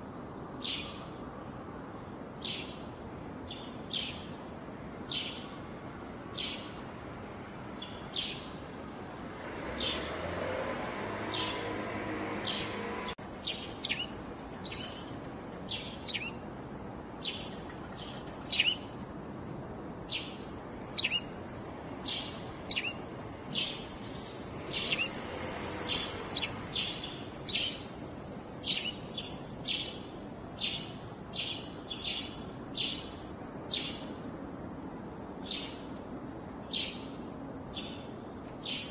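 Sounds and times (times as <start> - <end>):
steady low hiss: 0.0 - 38.9
bird chirping: 0.6 - 1.3, 2.4 - 8.8, 9.6 - 16.5, 17.2 - 19.0, 20.1 - 21.4, 22.0 - 34.2, 36.7 - 38.9.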